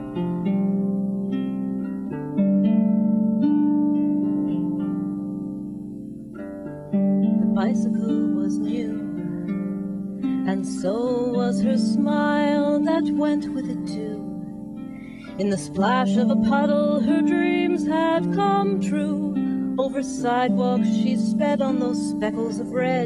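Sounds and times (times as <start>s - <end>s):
harp playing: 0.0s - 23.0s
woman singing: 7.4s - 9.3s, 10.4s - 14.5s, 15.2s - 23.0s.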